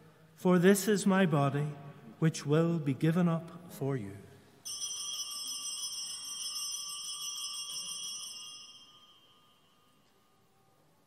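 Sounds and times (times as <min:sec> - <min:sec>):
altar bell ringing: 0:04.6 - 0:10.7.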